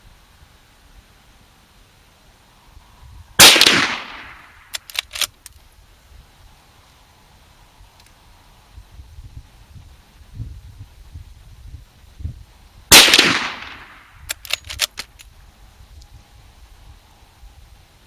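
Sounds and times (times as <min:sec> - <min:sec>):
rifle gunshot: 0:03.4 - 0:05.3, 0:12.9 - 0:14.9
metallic clicks of rifle lever: 0:03.4 - 0:05.6, 0:13.0 - 0:15.4.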